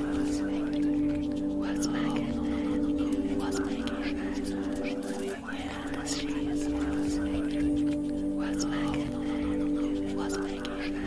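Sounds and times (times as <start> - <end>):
ambient music drone: 0.0 - 11.0
person whispering: 0.0 - 11.0.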